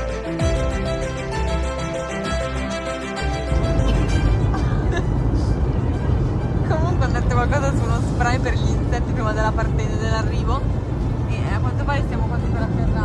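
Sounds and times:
airliner cabin rumble: 0.4s - 13.0s.

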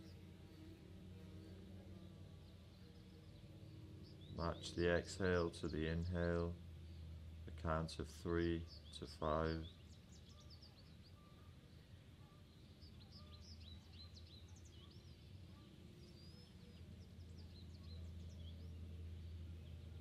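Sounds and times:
low steady hum: 0.0s - 20.0s
small birds chirping: 0.0s - 20.0s
whistled bird notes: 9.6s - 19.0s.

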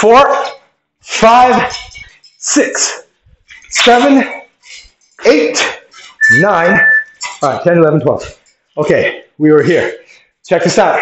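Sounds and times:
man counting aloud: 0.0s - 3.1s, 3.7s - 4.5s, 5.2s - 11.0s
thin high tone: 6.2s - 7.4s.

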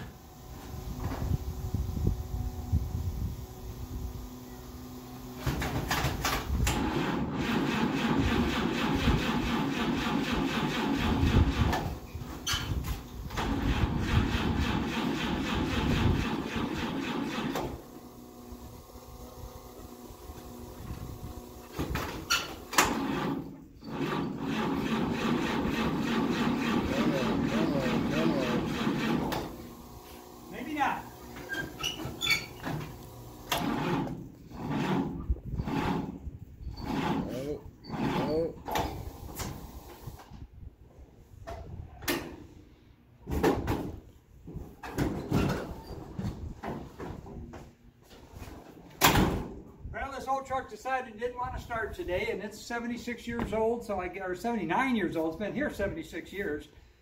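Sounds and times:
engine starter cranking: 5.5s - 18.0s, 21.7s - 29.7s, 31.4s - 36.2s.

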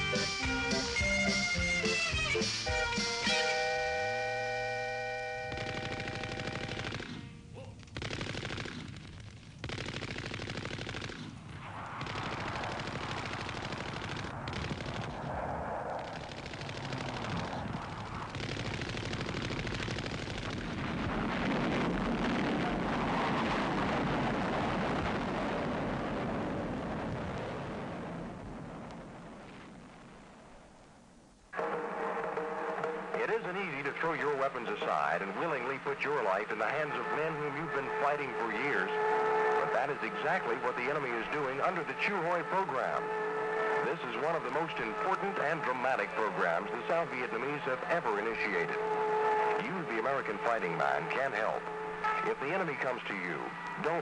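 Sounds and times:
rapid automatic gunfire: 5.4s - 15.2s, 16.0s - 21.7s
man announcing on radio: 33.1s - 54.0s.

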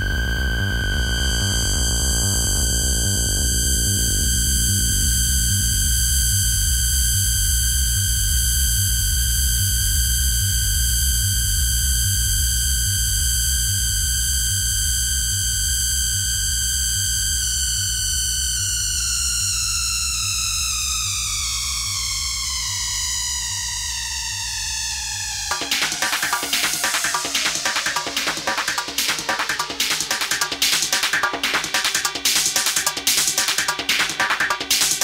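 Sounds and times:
fast pulsing bass: 0.0s - 8.3s, 25.5s - 35.0s
high synthesizer tone: 25.5s - 35.0s.

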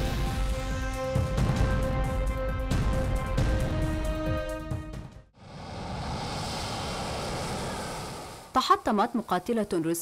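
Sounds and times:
fighter jet engines roaring: 5.4s - 8.6s.

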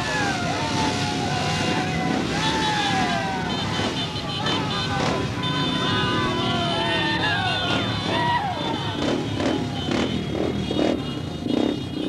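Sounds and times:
voices shouting: 0.0s - 11.3s
motorcycle engines running: 0.0s - 12.0s.

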